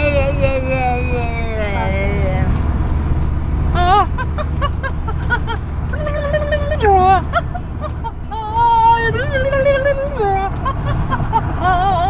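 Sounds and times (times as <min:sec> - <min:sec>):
car road noise rumble: 0:00.0 - 0:12.0
woman whooping: 0:03.8 - 0:04.2.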